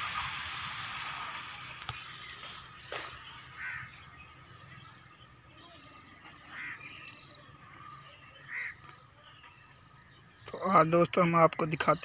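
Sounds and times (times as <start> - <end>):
short bird calls: 2.0 - 4.8, 5.5 - 9.7.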